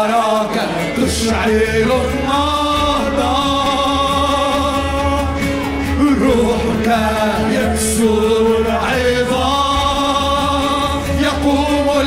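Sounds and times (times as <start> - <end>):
band with keyboard guitars drums: 0.0 - 12.0
voices singing held notes: 0.0 - 12.0.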